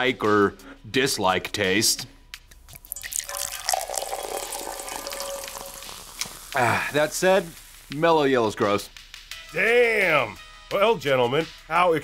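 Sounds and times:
soda pouring and fizzing: 2.7s - 8.0s.

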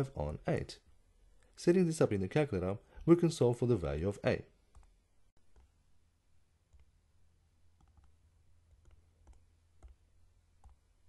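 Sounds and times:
faint computer keyboard clicks: 7.8s - 10.0s.

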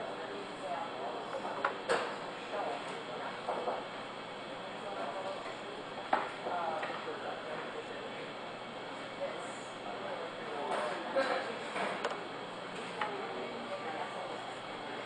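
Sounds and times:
background chatter: 0.0s - 15.0s.

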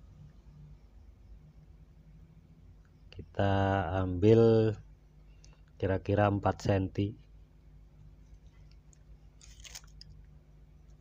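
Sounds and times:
faint steady low hum: 0.0s - 11.0s
crackling scrape of handling: 9.4s - 10.2s.

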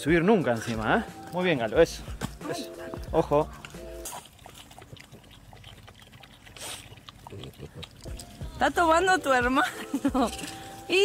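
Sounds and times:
dogs lapping water: 0.0s - 11.0s
dog breathing: 4.2s - 8.5s.

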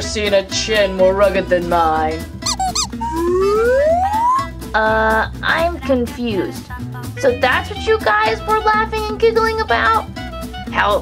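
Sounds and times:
background music: 0.0s - 11.0s
cartoon squeaks: 2.4s - 4.5s
rising whistle tone: 2.4s - 4.5s.

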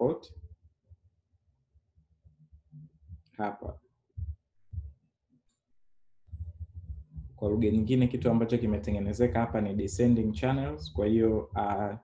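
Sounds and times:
dull low thumps: 4.2s - 5.0s, 5.8s - 12.0s.

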